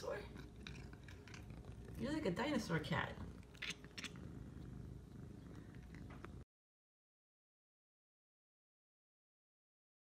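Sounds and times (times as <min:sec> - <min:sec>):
cat purring: 0:00.0 - 0:06.5.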